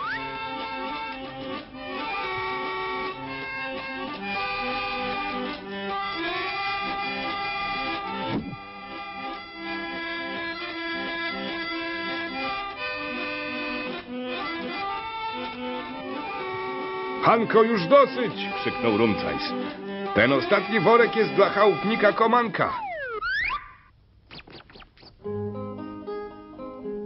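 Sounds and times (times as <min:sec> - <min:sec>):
barrel organ melody: 0:00.0 - 0:23.6, 0:24.3 - 0:27.0.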